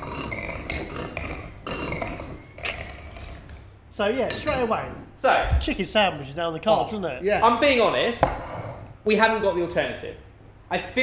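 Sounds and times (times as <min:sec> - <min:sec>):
metal utensils clinking in bowl: 0:00.0 - 0:03.6.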